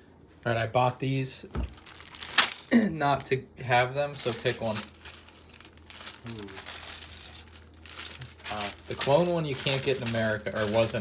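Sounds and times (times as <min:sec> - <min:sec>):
plastic packaging crinkling: 0:01.6 - 0:02.8, 0:04.0 - 0:11.0.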